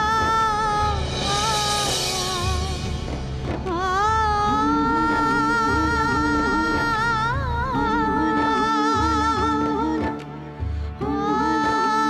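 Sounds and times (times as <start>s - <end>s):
low beats: 0.0s - 12.0s.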